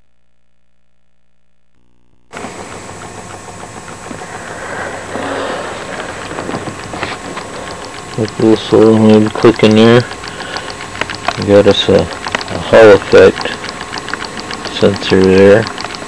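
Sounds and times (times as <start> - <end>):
hiss: 2.3 - 8.7
magnet motor stator clicking: 2.3 - 16.0.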